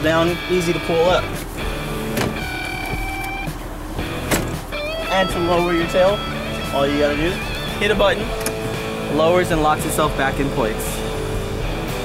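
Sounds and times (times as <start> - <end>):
seatback latch click: 2.1 - 3.4, 4.2 - 4.6, 8.4 - 8.6.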